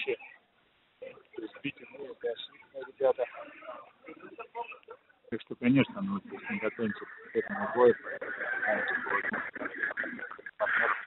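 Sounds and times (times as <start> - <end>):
man speaking over telephone: 4.4 - 8.1.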